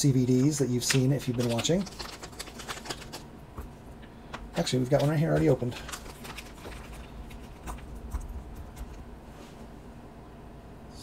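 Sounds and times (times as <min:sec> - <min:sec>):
plastic packaging crinkling: 0:00.7 - 0:03.7, 0:04.4 - 0:09.0.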